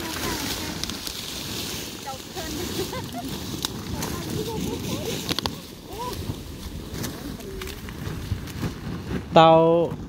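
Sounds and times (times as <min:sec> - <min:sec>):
people talking: 0:00.0 - 0:00.9, 0:02.0 - 0:06.4, 0:07.0 - 0:07.8, 0:09.4 - 0:10.0
steady rustling: 0:00.0 - 0:10.0.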